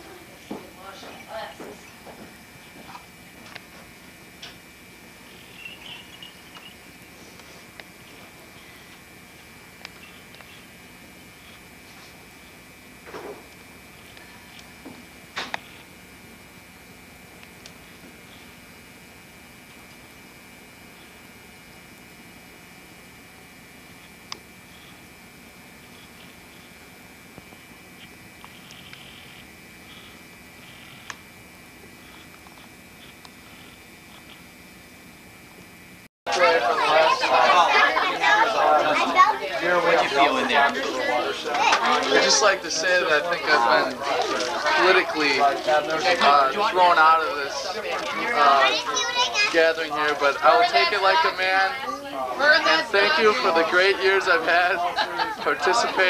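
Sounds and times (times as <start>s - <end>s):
tape hiss and hum: 0.0s - 56.0s.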